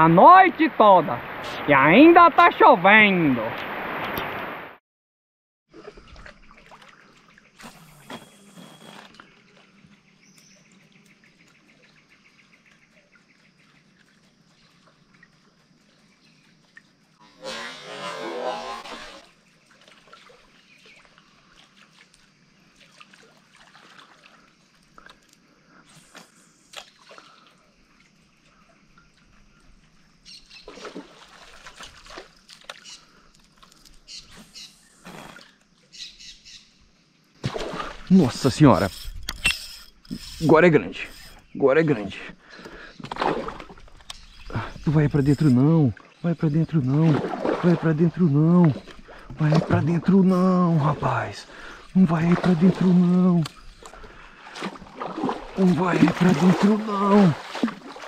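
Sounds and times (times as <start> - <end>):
faint bird calls: 32.8 - 33.4.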